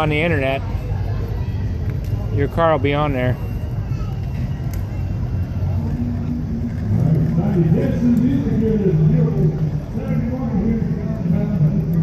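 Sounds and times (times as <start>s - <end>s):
indistinct voices talking: 0.0s - 12.0s
low street rumble: 0.0s - 12.0s.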